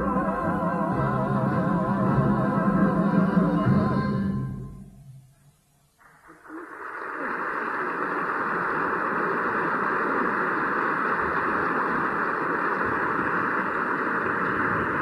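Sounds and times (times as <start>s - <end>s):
audience applauding: 6.3s - 15.0s.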